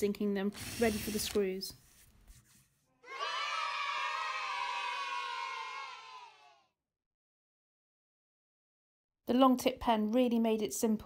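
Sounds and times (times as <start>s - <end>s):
crowd cheering and shouting: 3.0s - 6.7s.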